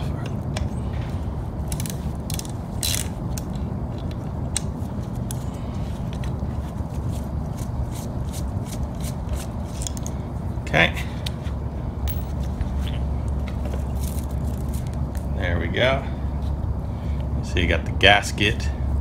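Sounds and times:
hand ratchet clicking: 1.7 - 3.6.

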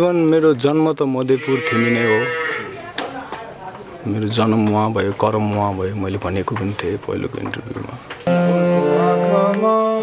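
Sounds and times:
man singing unaccompanied: 8.5 - 10.0.

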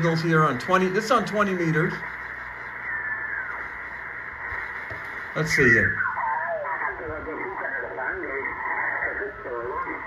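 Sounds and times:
radio receiver hiss: 0.0 - 10.0.

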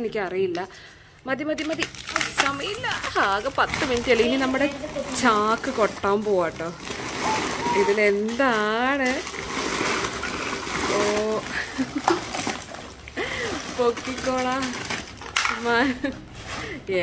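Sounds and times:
plastic bag crinkling and rustling: 1.6 - 17.0
child exclaiming: 7.2 - 8.2.

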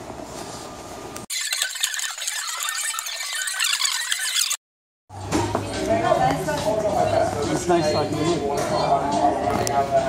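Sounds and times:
paint roller sticky crackling: 1.3 - 4.6.

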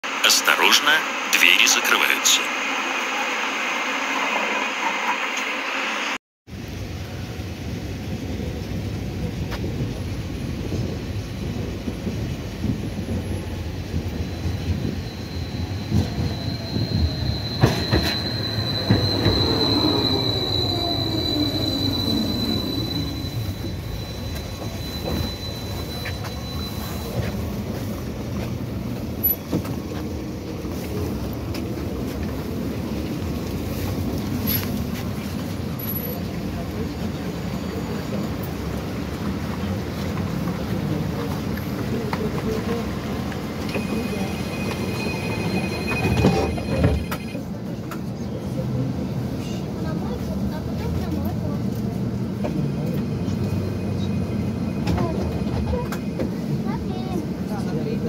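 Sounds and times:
tram wheels rumbling on rails: 1.9 - 58.0
high wheel squeal: 14.1 - 28.2, 43.5 - 47.4.

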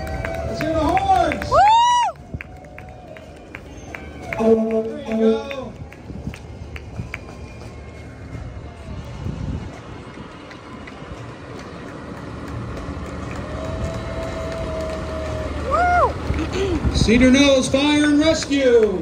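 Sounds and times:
fire engine diesel rumbling: 0.0 - 19.0
siren tone and whoop: 13.5 - 16.2.

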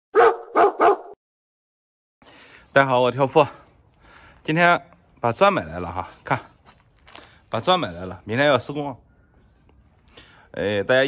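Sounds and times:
dog barking: 0.1 - 1.2.

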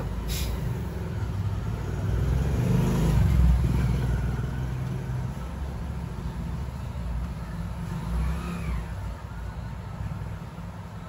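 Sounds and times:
vehicle engine rumble passing: 0.0 - 11.0.

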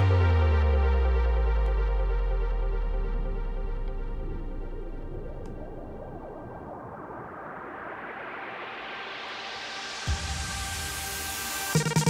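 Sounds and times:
held synth pad tones: 0.0 - 10.0
synth noise riser sweeping upward: 0.0 - 11.8.

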